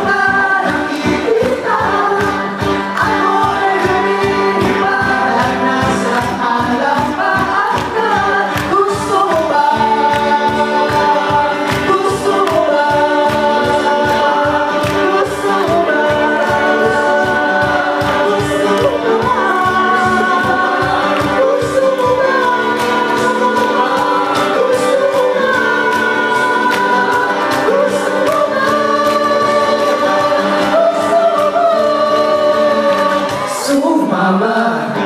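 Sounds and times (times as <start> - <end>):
guitar: 0.0 - 35.0
male vocal group singing: 0.0 - 35.0
steady beat: 0.1 - 31.6.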